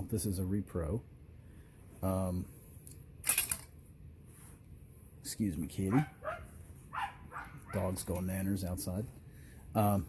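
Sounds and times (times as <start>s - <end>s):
metal bayonet rattling scrape: 2.8s - 3.8s.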